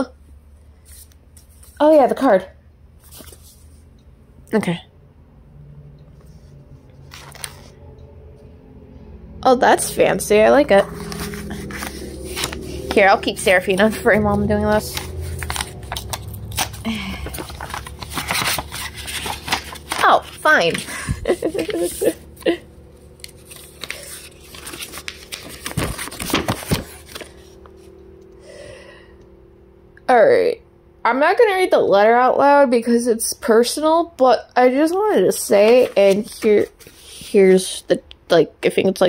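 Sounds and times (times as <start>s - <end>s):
steady low hum: 0.0s - 38.6s
paper envelope rustling: 3.0s - 3.6s, 7.1s - 7.7s, 10.8s - 22.6s, 23.2s - 27.7s, 35.5s - 37.4s.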